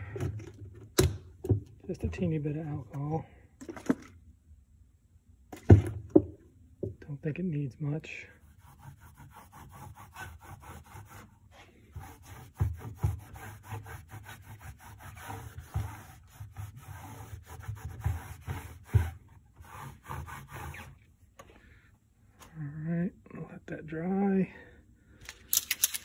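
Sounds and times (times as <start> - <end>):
rag scrubbing plastic: 8.4 - 21.1.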